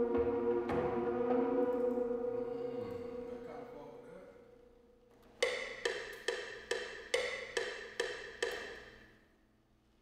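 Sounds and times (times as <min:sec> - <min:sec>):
pitched percussion knocking: 0:05.4 - 0:09.0.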